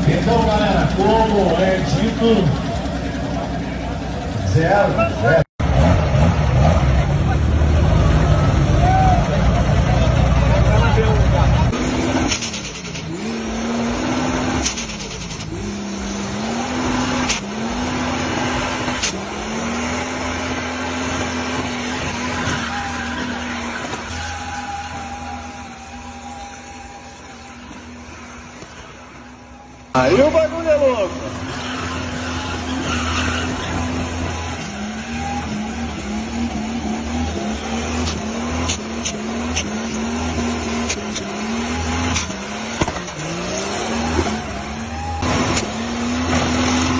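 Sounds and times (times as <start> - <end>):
car engine revving: 0.0 - 46.9
tyres squealing: 11.8 - 46.9.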